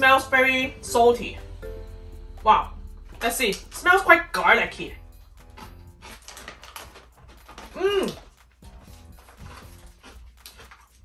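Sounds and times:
person chewing crunchy snack: 5.0 - 11.0.

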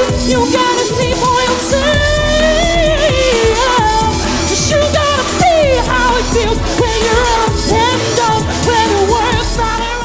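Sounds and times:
keyboards: 0.0 - 10.0
woman singing: 0.0 - 10.0
steady beat: 6.7 - 8.8.

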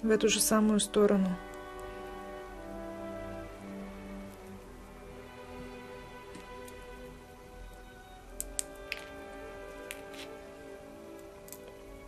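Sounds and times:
soft background music: 0.0 - 12.0
small sharp wire clicks: 8.4 - 9.2.

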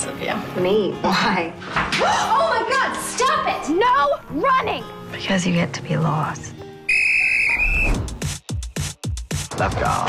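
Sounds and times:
whistle blast: 6.9 - 8.2
electronic trailer music: 7.4 - 10.0.

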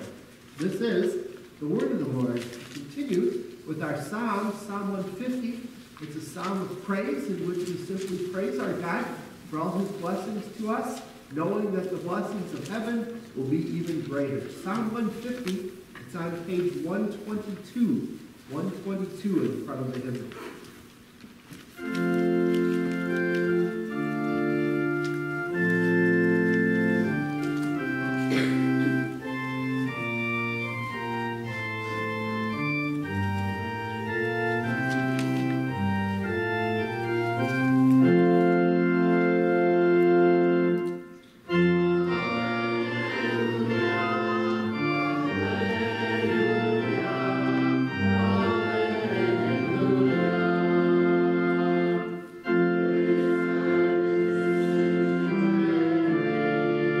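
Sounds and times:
church organ chords: 0.0 - 20.6, 21.6 - 57.0.

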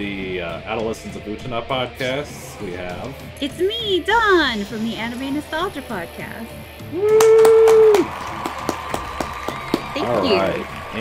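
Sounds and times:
person clapping hands: 7.0 - 11.0.

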